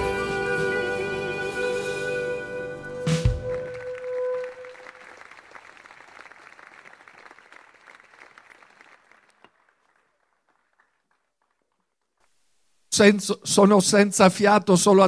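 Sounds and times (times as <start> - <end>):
audience applauding: 3.2 - 12.2.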